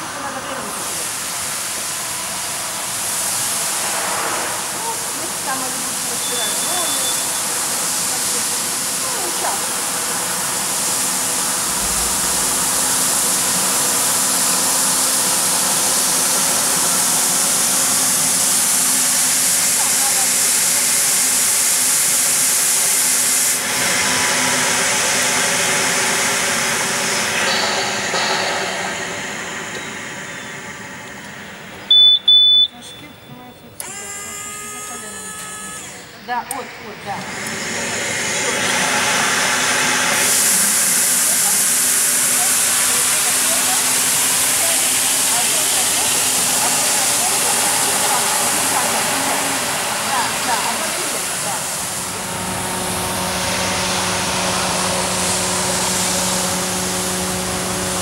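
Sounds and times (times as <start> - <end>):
floor scrubber hissing: 0.0 - 32.7, 33.8 - 58.0
short high beep: 6.2 - 7.4, 31.9 - 33.4
brushes scrubbing wet floor: 40.2 - 52.0.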